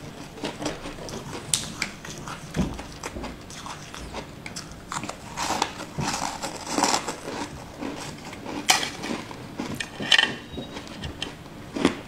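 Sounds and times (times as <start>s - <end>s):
biting and crunching: 0.0s - 12.0s.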